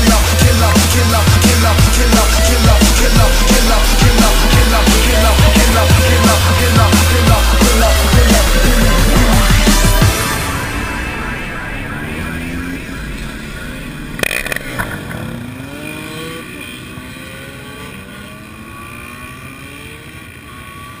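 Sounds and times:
motorcycles passing by: 0.0s - 21.0s.

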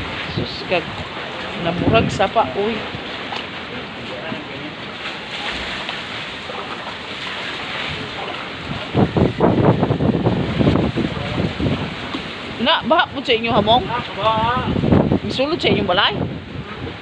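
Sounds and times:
feet wading through water: 0.0s - 15.6s
steady rushing noise: 0.0s - 17.0s.

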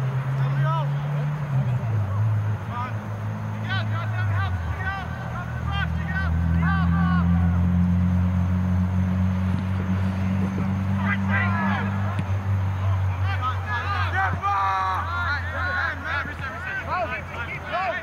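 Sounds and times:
distant players shouting: 0.0s - 18.0s
low motor drone: 6.3s - 12.6s.

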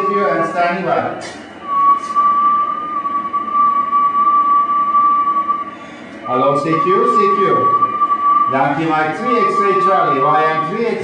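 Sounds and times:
radio whistle: 1.6s - 11.0s.

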